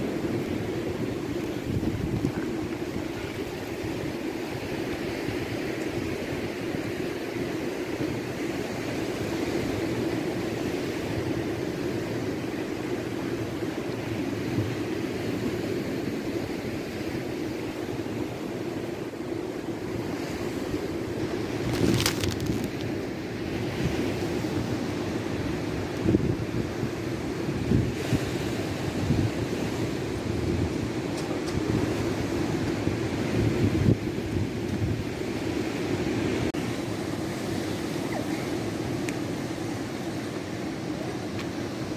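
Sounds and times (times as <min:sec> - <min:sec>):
wind noise on microphone: 0:00.0 - 0:11.4, 0:19.9 - 0:38.8.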